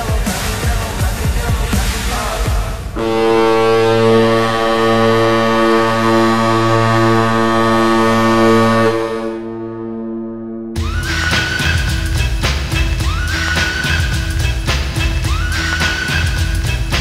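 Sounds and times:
stadium music: 0:00.0 - 0:17.0
long horn blast: 0:03.0 - 0:10.8.

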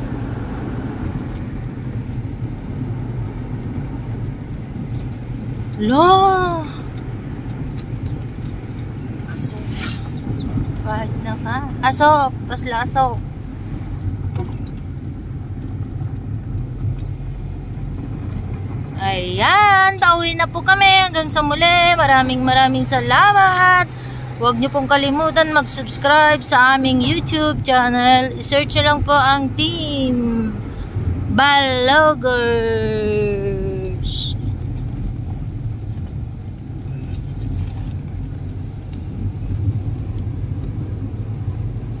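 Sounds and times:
car engine and road rumble: 0:00.0 - 0:42.0.

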